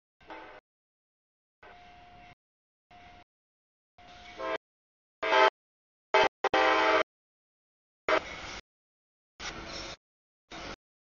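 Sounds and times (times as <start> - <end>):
locomotive air horn blasts: 4.1 - 4.6, 5.2 - 7.1.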